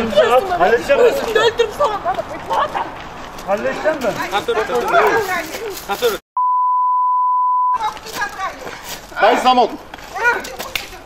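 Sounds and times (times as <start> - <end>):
censor bleep: 6.4 - 7.8.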